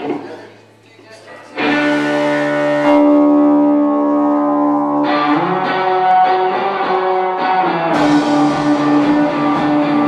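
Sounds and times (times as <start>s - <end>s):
rock band sustained chord: 1.6s - 10.0s.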